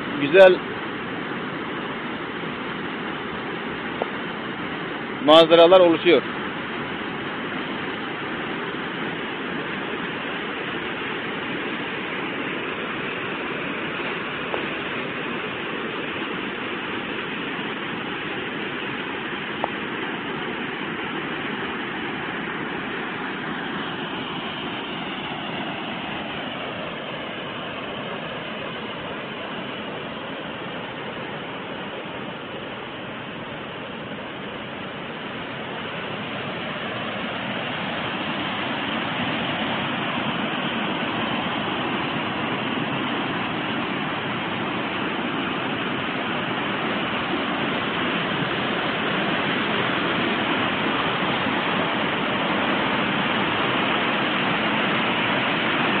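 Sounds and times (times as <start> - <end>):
waterfall cascading into pool: 0.0 - 56.0.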